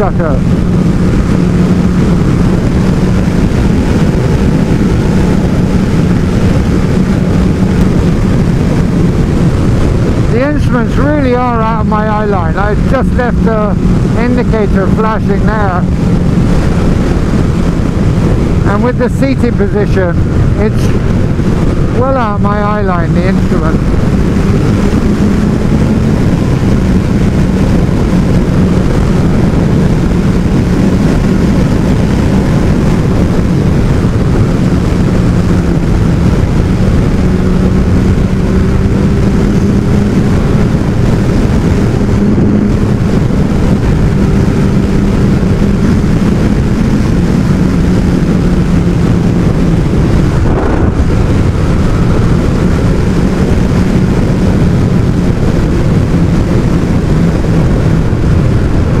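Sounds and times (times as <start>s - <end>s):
motorcycle engine running: 0.0s - 59.0s
wind rush over microphone: 0.0s - 59.0s.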